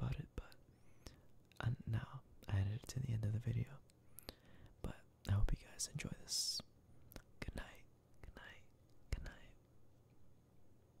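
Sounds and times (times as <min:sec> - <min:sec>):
person whispering: 0:00.0 - 0:03.9, 0:04.8 - 0:09.6.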